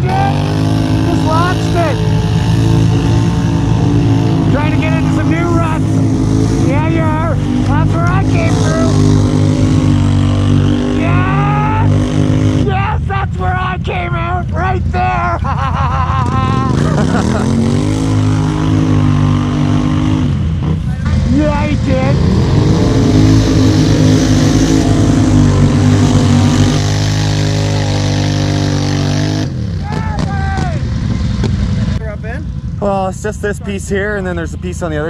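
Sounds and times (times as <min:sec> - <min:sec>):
people shouting: 0:00.0 - 0:05.8, 0:11.0 - 0:12.0, 0:24.7 - 0:28.4, 0:29.8 - 0:30.8
quad engine revving: 0:00.0 - 0:32.0.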